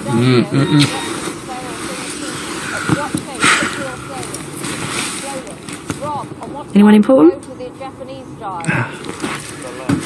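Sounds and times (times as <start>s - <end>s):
soft wordless murmurs: 0.0s - 10.0s
breathy burst: 1.9s - 4.2s.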